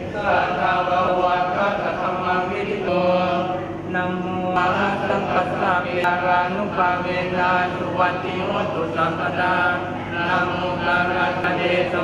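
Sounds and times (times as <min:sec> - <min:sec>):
monks chanting in unison: 0:00.0 - 0:12.0.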